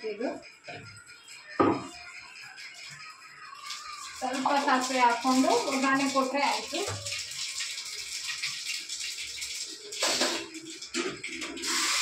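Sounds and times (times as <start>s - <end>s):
food sizzling on hot pan: 1.4s - 12.0s.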